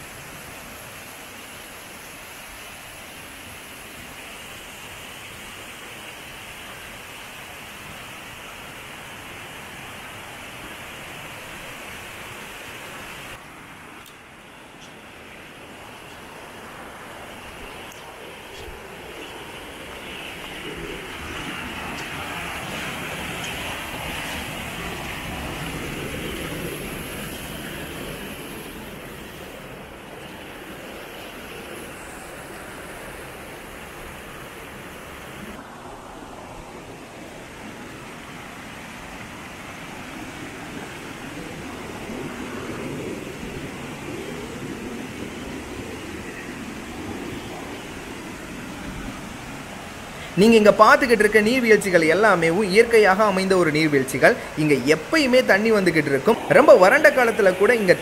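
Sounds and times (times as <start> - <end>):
waterfall and stream over rocks: 0.0 - 41.3, 46.6 - 58.0.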